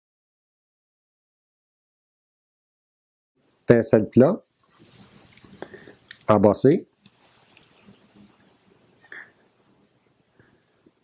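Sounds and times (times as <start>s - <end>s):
faint rustles and clicks of handling: 4.5s - 11.0s.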